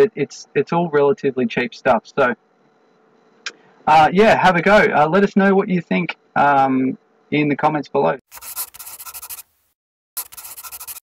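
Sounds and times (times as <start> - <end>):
pen scratching on paper: 8.3 - 9.5, 10.2 - 11.0.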